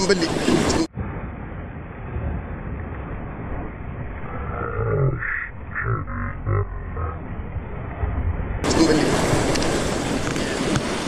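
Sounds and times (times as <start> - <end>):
waves washing against rocks: 0.0 - 11.0
wind buffeting microphone: 0.0 - 11.0
person grunting: 4.3 - 7.2.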